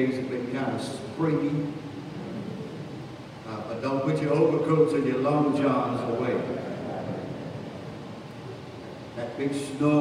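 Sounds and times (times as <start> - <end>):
echoing man's voice: 0.0 - 1.8, 3.5 - 7.2, 9.2 - 10.0
room hiss: 0.0 - 10.0.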